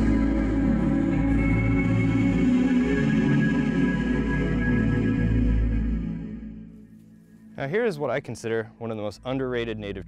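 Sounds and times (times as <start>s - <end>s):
ambient instrumental music: 0.0s - 10.0s.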